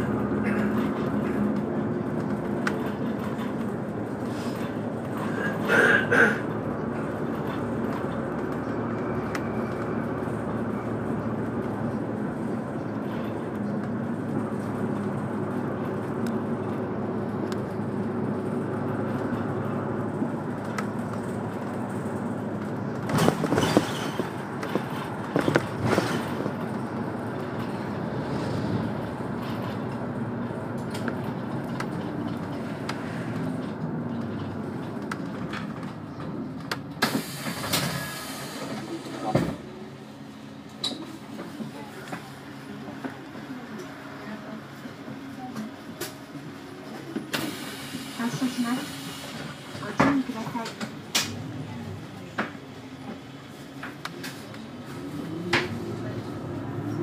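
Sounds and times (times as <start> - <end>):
bus engine and road drone: 0.0 - 57.0.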